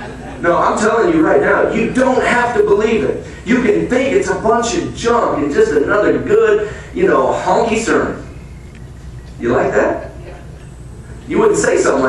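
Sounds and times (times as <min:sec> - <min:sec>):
man preaching: 0:00.4 - 0:08.3, 0:09.4 - 0:10.1, 0:11.3 - 0:12.0.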